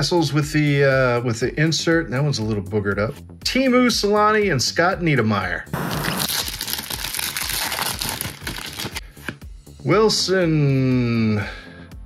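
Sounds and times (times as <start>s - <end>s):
background music: 0.0s - 12.0s
foil wrapper crinkling and tearing: 5.8s - 9.3s.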